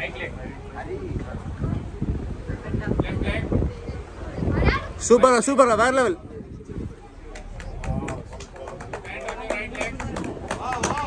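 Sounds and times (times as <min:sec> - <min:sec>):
voices talking and calling out: 0:00.0 - 0:11.0
wind rumble on microphone: 0:00.0 - 0:11.0.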